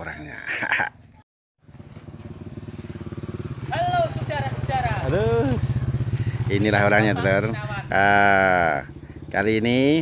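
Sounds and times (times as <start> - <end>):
small engine puttering: 1.6 - 10.0.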